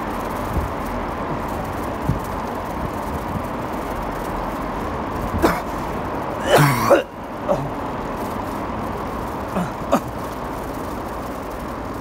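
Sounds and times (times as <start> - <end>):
car engine and tyres on road: 0.0 - 12.0.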